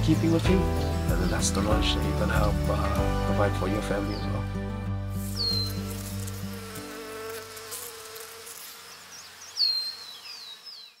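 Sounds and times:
music: 0.0 - 7.3
bees buzzing: 0.0 - 11.0.

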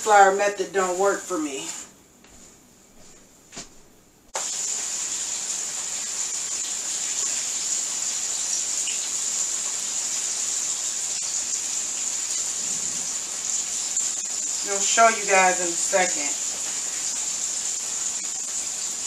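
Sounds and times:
pork chops sizzling in oil: 4.4 - 19.0.

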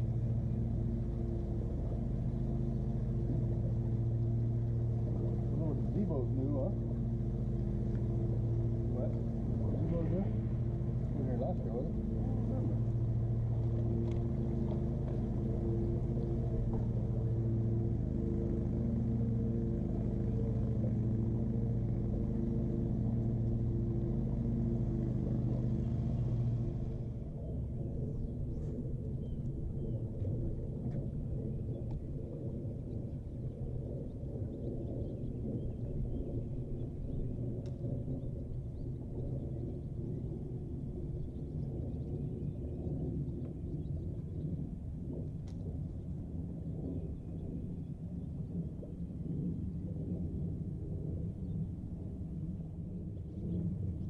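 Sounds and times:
boat motor humming: 0.0 - 54.0
rough low rumble: 0.0 - 54.0
faint clicks: 13.7 - 15.2, 31.8 - 32.1, 37.6 - 38.0, 45.4 - 45.8.

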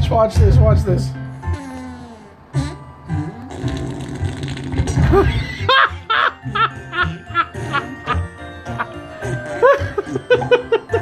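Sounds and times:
comic fart sound effect: 1.5 - 5.7
cartoon music from tv speaker: 2.5 - 11.0
rising squeaky cartoon sounds: 8.6 - 10.0.

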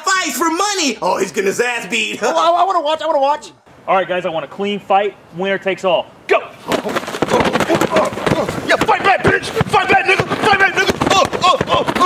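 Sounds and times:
voices: 0.0 - 12.0
boxing glove punches thumping: 7.3 - 12.0.

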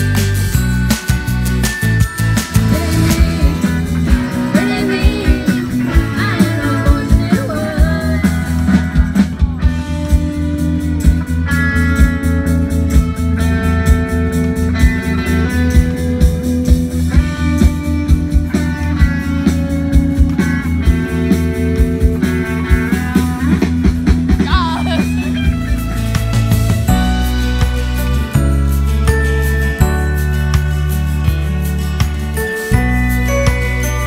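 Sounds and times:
live rock band playing: 0.0 - 34.0
person singing: 2.7 - 8.4.

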